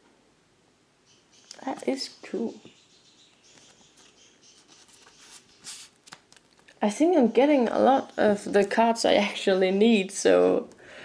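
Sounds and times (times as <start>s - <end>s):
trading card rustling: 3.5s - 6.8s.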